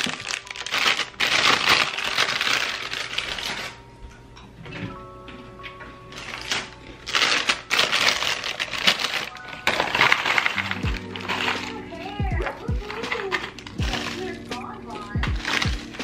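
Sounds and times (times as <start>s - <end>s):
plastic bag rustling: 0.0s - 3.8s, 6.1s - 16.0s
soft background music: 0.0s - 16.0s
plastic containers clattering: 6.2s - 14.6s.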